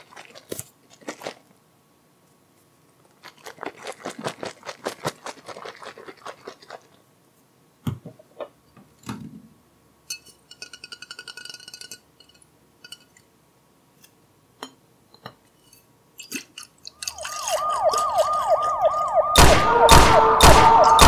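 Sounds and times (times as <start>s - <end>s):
plastic crinkling: 0.0s - 1.4s.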